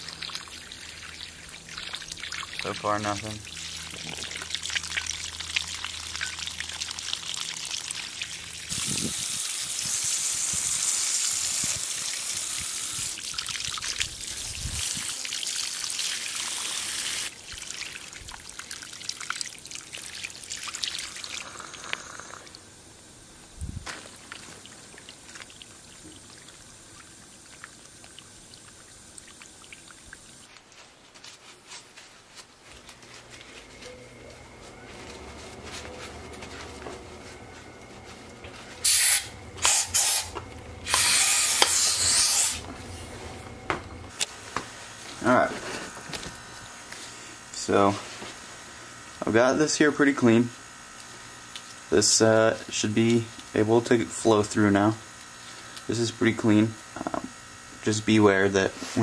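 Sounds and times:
hose water spraying: 0.0s - 22.4s, 38.8s - 42.7s.

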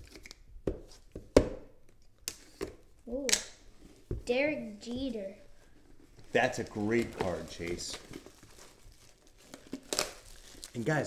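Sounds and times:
plastic wrap rustling: 5.6s - 11.0s.

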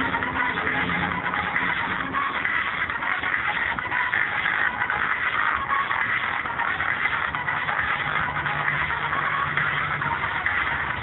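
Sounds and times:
low-fidelity music: 0.0s - 11.0s.

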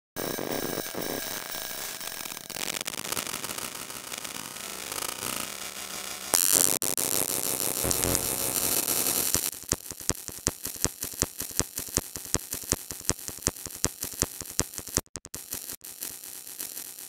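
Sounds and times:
noise-based electronic music: 6.4s - 17.0s.

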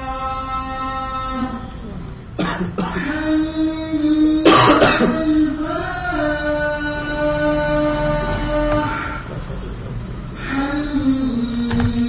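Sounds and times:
person clearing throat: 2.4s - 3.3s, 4.4s - 5.3s.

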